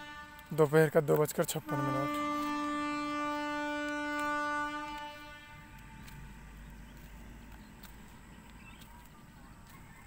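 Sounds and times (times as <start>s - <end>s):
horn long steady note: 0.0s - 8.2s.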